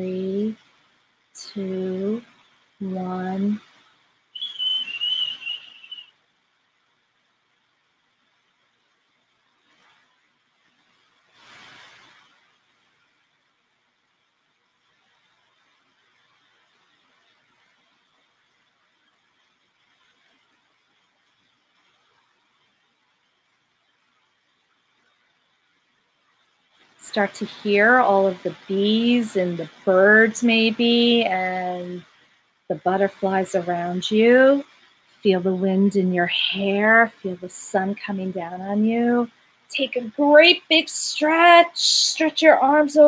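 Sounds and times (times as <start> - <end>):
soft breath-like hiss: 10.8 - 13.1.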